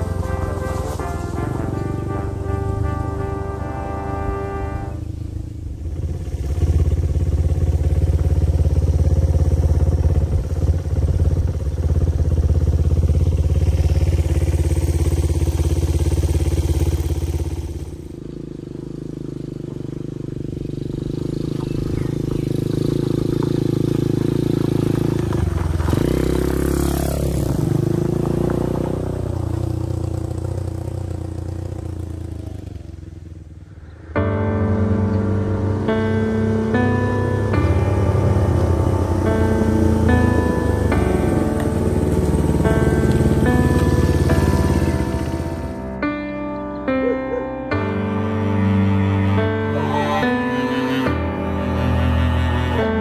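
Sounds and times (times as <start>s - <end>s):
motorcycle engine running: 0.0s - 53.0s.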